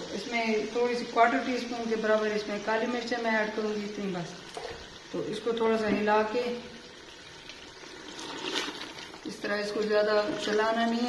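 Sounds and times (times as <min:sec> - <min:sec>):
meat sizzling in pot: 0:00.0 - 0:11.0.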